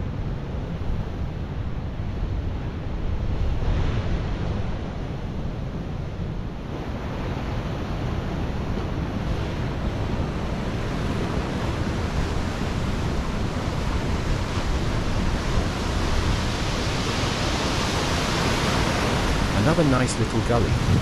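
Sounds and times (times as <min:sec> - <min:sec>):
wind rumbling on microphone: 0:00.0 - 0:21.0
surf breaking on rocks: 0:08.8 - 0:21.0.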